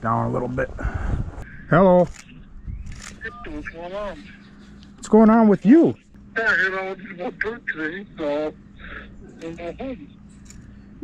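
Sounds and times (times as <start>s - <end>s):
voice through phone speaker: 3.2s - 4.5s, 6.4s - 10.1s.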